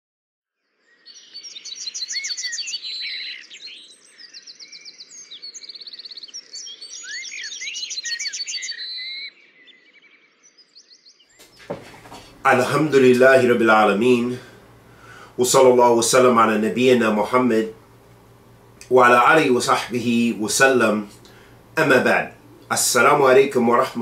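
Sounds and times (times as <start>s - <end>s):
birds chirping and trilling: 0.6s - 13.4s
faint outdoor hiss: 11.4s - 24.0s.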